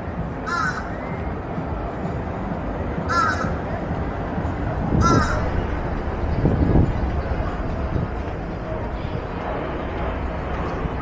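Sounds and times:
low outdoor rumble: 0.0 - 11.0
crow cawing: 0.4 - 0.9, 3.1 - 3.5, 5.0 - 5.5.

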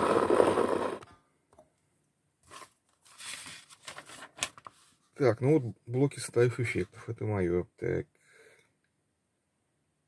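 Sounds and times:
paper pages rustling: 2.4 - 5.1.

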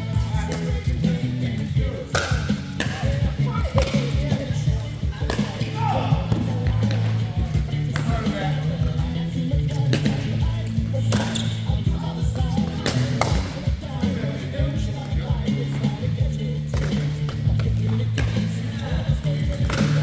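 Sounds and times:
background music: 0.0 - 20.0
voices: 0.0 - 20.0.

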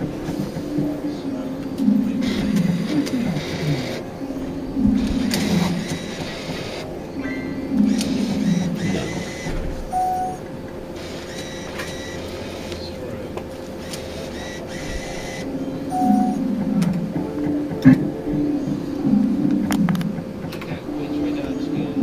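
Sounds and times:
steady electronic tone: 0.0 - 21.9
machine clicks: 7.8 - 9.7
short bleeps: 9.9 - 10.4, 15.3 - 16.4.

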